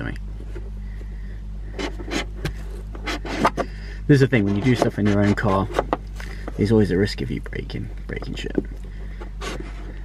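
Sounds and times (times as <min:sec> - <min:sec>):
motorcycle engine idling: 0:05.8 - 0:10.0.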